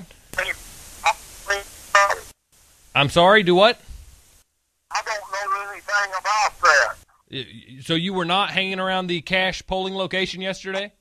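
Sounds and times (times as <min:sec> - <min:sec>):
telephone line hiss: 0:00.0 - 0:03.4, 0:04.9 - 0:07.0
man's voice over telephone: 0:00.4 - 0:02.3, 0:04.9 - 0:11.0.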